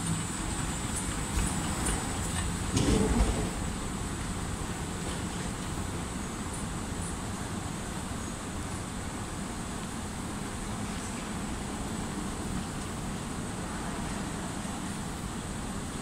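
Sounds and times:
moving walkway rumble: 0:00.0 - 0:16.0.

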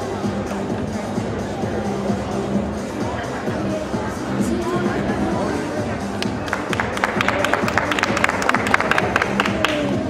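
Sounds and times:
background music: 0:00.0 - 0:10.0
crowd noise: 0:00.0 - 0:10.0
audience clapping: 0:06.2 - 0:10.0.

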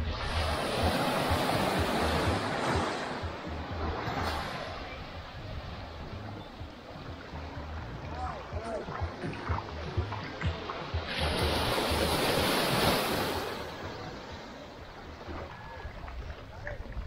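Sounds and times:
small waves washing onto sand: 0:00.0 - 0:07.4, 0:08.0 - 0:17.0.

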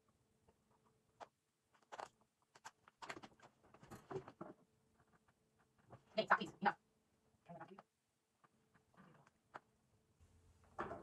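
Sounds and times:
plastic strap scraping and clicking: 0:01.2 - 0:03.5.

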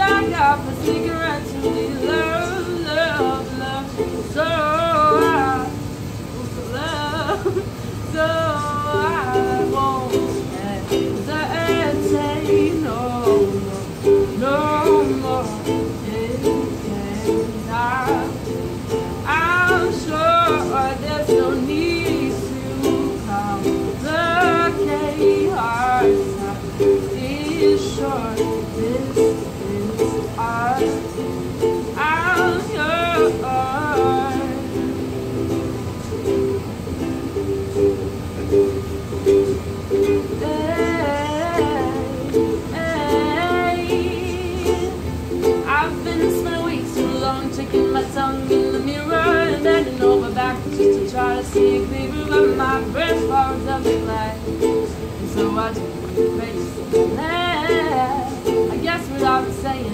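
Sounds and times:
person singing: 0:00.0 - 0:59.9
ukulele strumming: 0:00.0 - 0:59.9.

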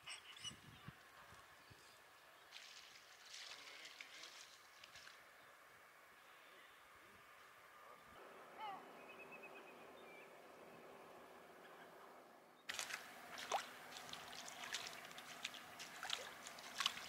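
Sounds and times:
bird chirps: 0:00.0 - 0:00.9
water splashing and trickling: 0:02.4 - 0:05.4, 0:12.7 - 0:17.0
ripples lapping at shore: 0:12.7 - 0:17.0.

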